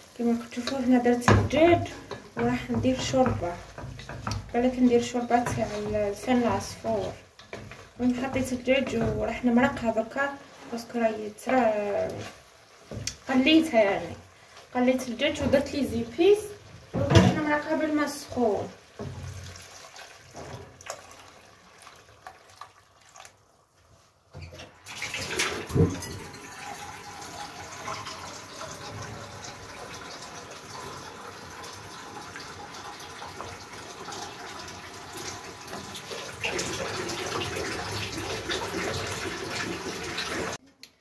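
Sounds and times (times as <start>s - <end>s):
soup stirred with wooden spoon: 0.0s - 24.4s
hot water pouring into pot: 18.3s - 23.5s, 24.8s - 40.6s.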